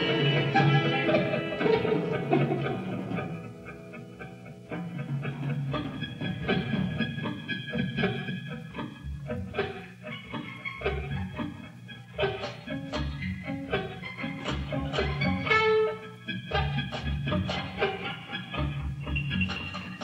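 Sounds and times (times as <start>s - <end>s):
picked electric guitar notes: 0.0s - 20.0s
rock band jamming: 0.0s - 20.0s.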